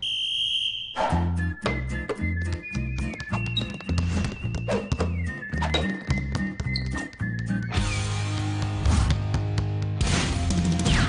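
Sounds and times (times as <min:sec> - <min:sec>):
sports whistle blast: 0:00.0 - 0:01.6
background music with beat: 0:01.4 - 0:11.0.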